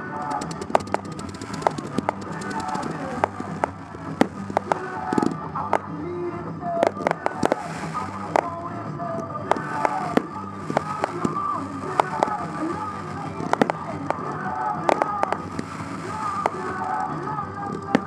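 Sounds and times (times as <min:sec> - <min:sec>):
music playing: 0:00.0 - 0:18.0
fireworks bangs and crackles: 0:00.1 - 0:18.0.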